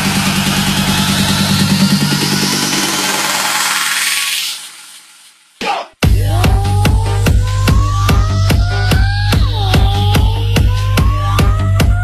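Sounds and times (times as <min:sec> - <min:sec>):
rising synth sweep: 0:00.0 - 0:05.3.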